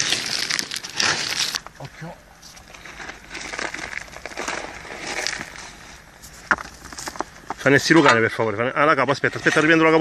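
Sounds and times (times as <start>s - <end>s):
rubble crunching and scraping: 0.0s - 10.0s.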